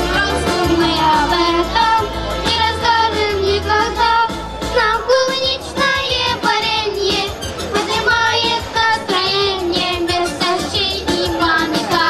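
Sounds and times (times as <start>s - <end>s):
instrumental accompaniment: 0.0s - 12.0s
steady bass line: 0.0s - 12.0s.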